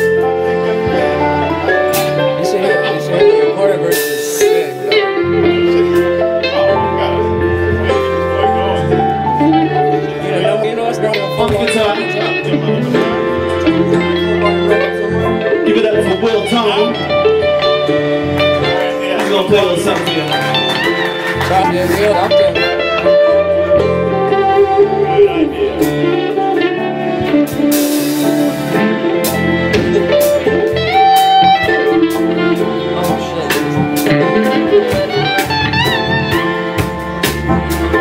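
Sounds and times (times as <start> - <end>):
drums keeping a steady beat: 0.0 - 7.0, 11.0 - 38.0
bass: 0.0 - 38.0
electric guitar: 0.0 - 38.0
keyboard chords: 0.0 - 38.0.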